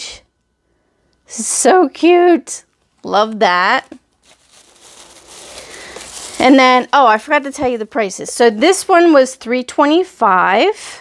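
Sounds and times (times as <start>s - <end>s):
packaging rustling and crinkling: 2.7s - 8.8s.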